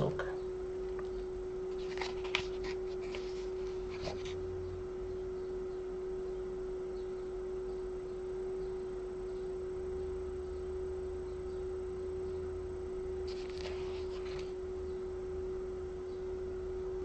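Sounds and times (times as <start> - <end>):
faint low hum: 0.0 - 17.0
steady pure tone: 0.0 - 17.0.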